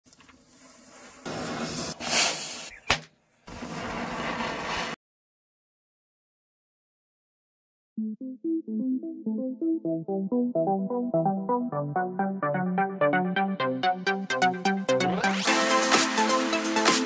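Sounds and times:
matchsticks fizzing: 0.1 - 2.8
hissing of spraying sparks: 0.1 - 5.0
sharp firework crack: 0.5 - 5.0.

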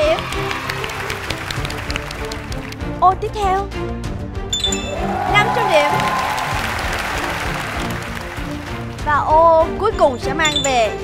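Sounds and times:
hand clapping: 0.0 - 3.0, 5.1 - 9.0
background music: 0.0 - 11.0.

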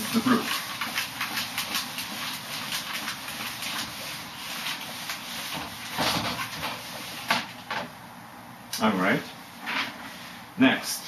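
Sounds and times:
eraser wiping whiteboard: 0.0 - 7.5
man talking: 8.8 - 9.3, 10.6 - 11.0.

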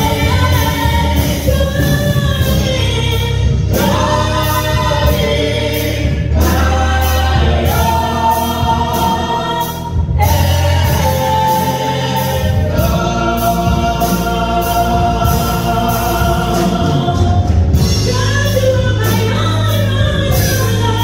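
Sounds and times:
gospel group singing in harmony: 0.0 - 21.0
low bass: 0.0 - 21.0.

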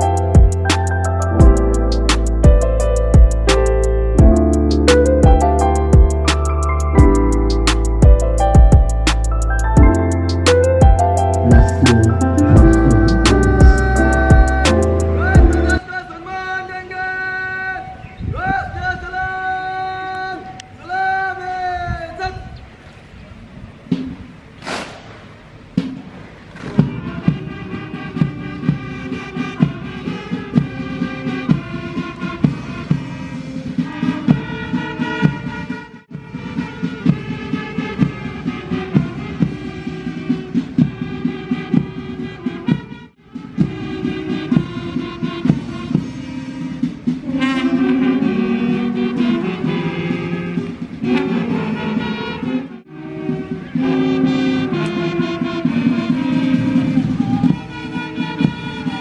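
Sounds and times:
brass band playing march music: 0.0 - 15.8, 25.8 - 59.0.

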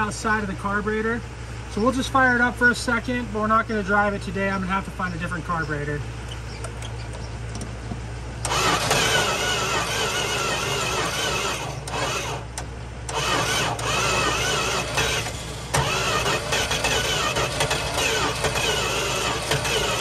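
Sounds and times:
starter cranking car engine: 8.4 - 20.0.

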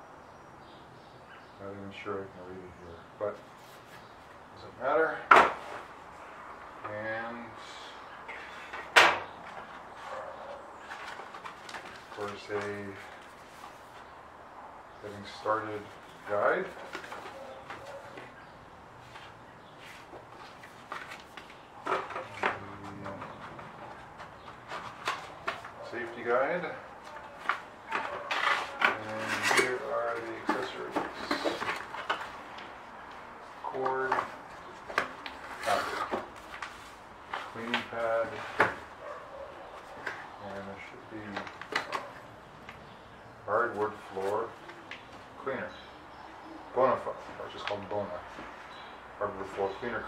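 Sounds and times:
paper and cardboard rustling: 8.3 - 14.2, 15.0 - 18.4, 19.0 - 42.3, 43.5 - 45.4
faint packaging handling: 9.5 - 14.2, 19.0 - 42.8.

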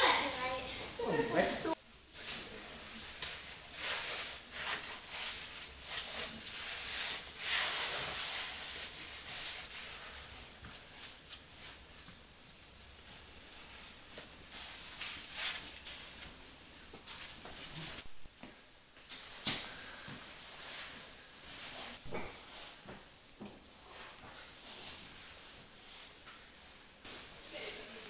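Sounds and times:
scuffing and rustling of climber: 13.0 - 28.0.

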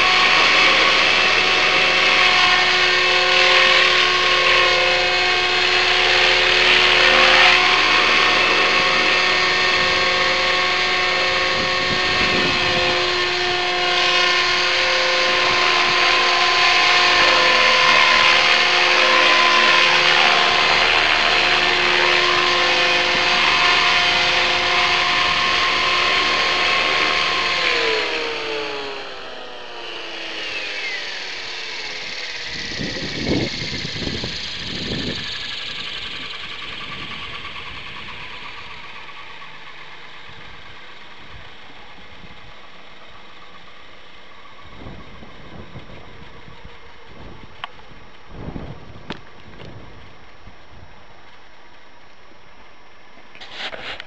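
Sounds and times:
rc helicopter rotors whining: 0.0 - 54.0.

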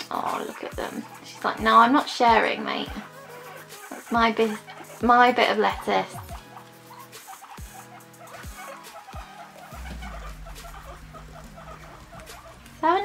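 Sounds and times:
background music with deep bass: 0.0 - 13.0
guinea pigs calling softly: 0.0 - 13.0.

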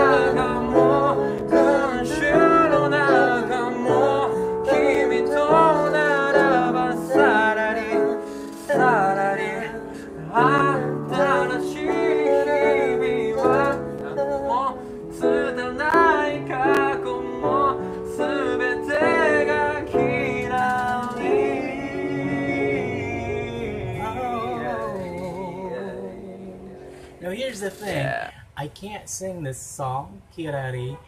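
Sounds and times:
man singing pop song: 0.0 - 26.9
upright piano chords: 0.0 - 27.6.

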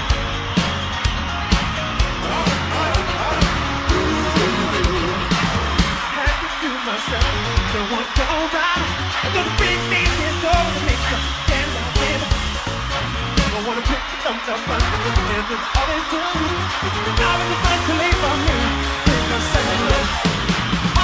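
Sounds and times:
crowd screaming: 0.0 - 21.0
live pop music with drums: 0.0 - 21.0.

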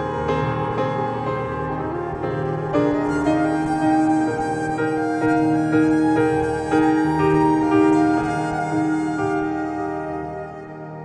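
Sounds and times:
bowed violin: 0.0 - 11.0
piano notes: 0.0 - 11.0.

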